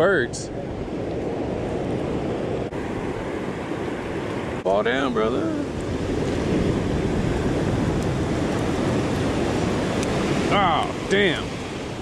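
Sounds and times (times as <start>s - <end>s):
waves breaking on beach: 0.0s - 12.0s.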